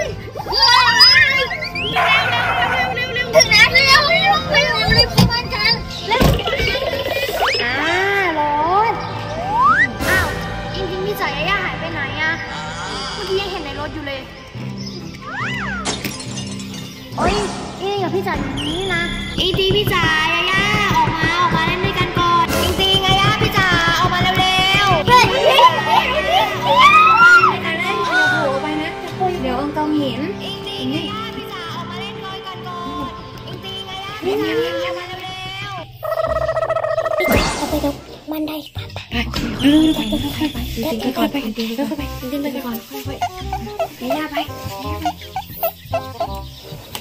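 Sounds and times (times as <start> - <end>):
girls shrieking and laughing: 0.0 - 4.8, 6.4 - 8.2, 25.2 - 28.4
deep thump: 18.4 - 25.4.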